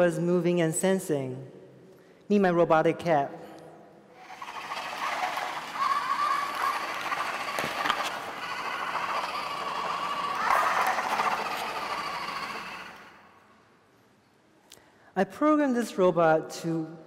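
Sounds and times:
small electric motors whirring: 0:04.2 - 0:13.3.

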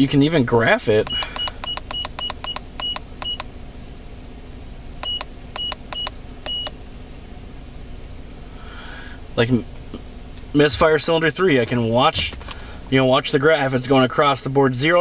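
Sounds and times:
keypad beeping: 0:01.0 - 0:03.5, 0:05.0 - 0:06.7.

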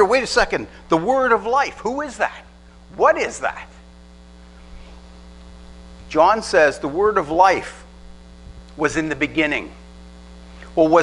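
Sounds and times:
person speaking: 0:00.0 - 0:03.9, 0:06.1 - 0:09.9, 0:10.6 - 0:11.0
electrical mains hum: 0:00.0 - 0:11.0.

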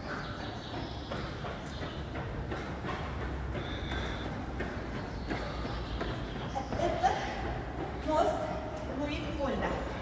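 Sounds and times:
footsteps on concrete: 0:00.0 - 0:10.0.

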